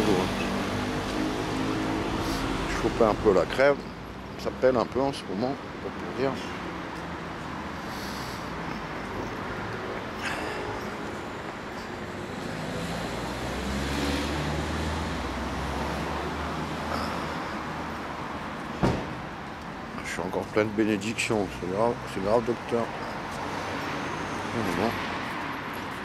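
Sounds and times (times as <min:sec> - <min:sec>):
vehicle engine rumbling: 0:06.4 - 0:21.2
short knock: 0:18.8 - 0:19.2.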